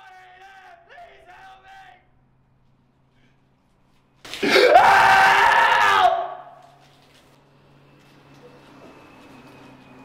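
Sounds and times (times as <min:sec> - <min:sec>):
man screaming: 0:04.4 - 0:06.6.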